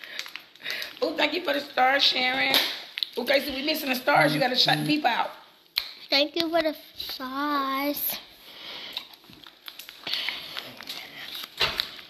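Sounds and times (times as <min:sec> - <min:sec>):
plastic candy wrapper crinkling: 0:00.0 - 0:01.4, 0:02.9 - 0:03.4, 0:08.9 - 0:12.0.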